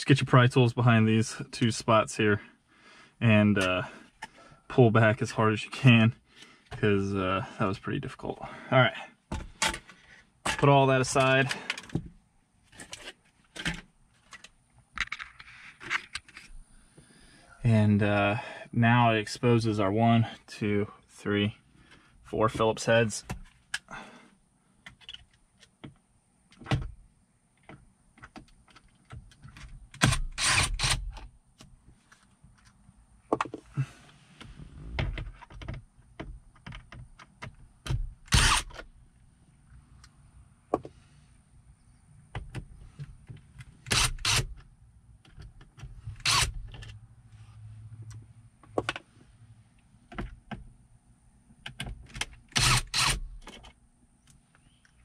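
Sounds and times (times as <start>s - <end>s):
cordless drill running: 38.3s - 38.7s, 46.2s - 46.5s, 52.6s - 53.2s.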